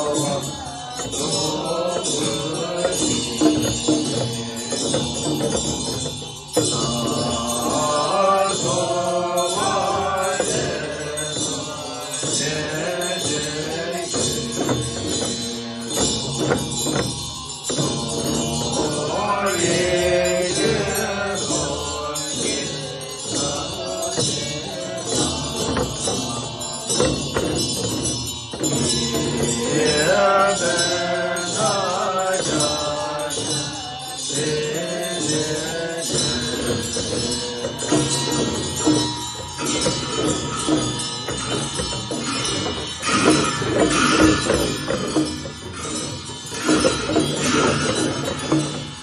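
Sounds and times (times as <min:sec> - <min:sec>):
monks chanting: 0:00.0 - 0:17.1, 0:17.7 - 0:28.0, 0:28.6 - 0:49.0
steady high ringing: 0:00.0 - 0:49.0.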